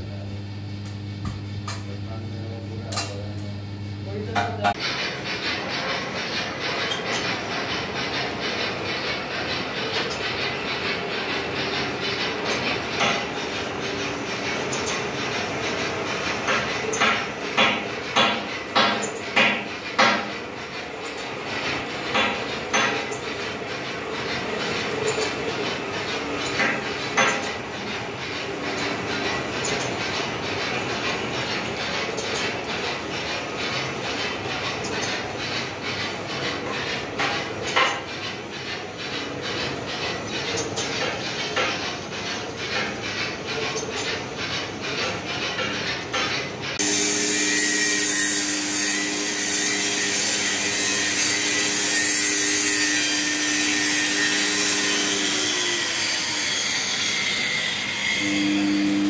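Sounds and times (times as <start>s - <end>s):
machine chain and gears rattling: 4.8s - 58.2s
electric motor humming: 46.8s - 59.0s.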